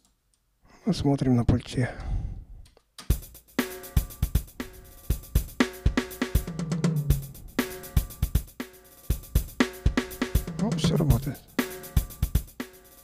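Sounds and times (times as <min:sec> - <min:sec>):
drum kit beat: 0:03.0 - 0:13.0.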